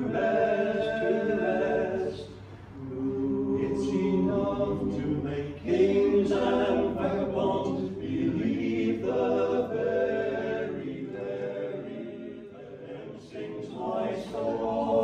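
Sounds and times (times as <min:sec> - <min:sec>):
male group singing in harmony: 0:00.0 - 0:15.0.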